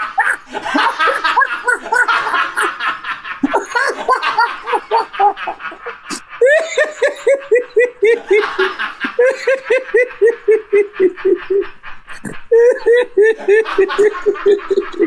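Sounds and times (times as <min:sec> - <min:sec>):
person laughing hard: 0:00.0 - 0:15.0.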